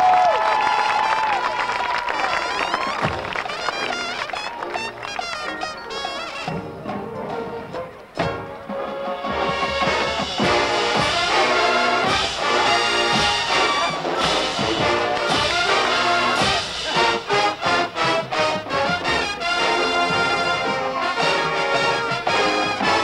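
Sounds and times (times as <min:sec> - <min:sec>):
marching band brass: 0:00.3 - 0:23.0
drum hits: 0:08.2 - 0:19.4.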